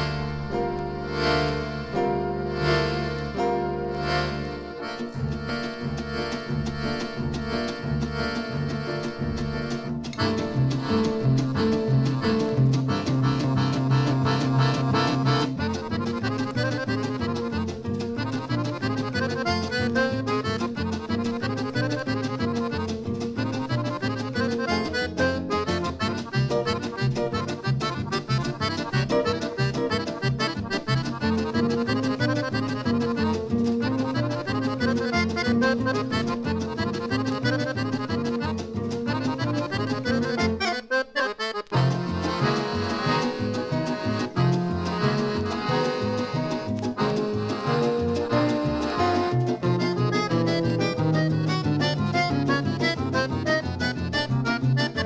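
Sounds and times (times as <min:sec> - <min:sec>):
accordion playing fast tune: 0:00.0 - 0:55.0
steady rhythmic beat: 0:00.0 - 0:55.0.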